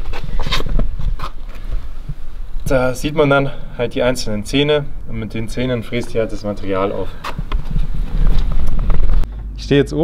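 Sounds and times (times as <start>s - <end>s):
microphone handling noise: 0.0s - 2.7s, 5.9s - 9.6s
wind on microphone: 7.2s - 9.3s.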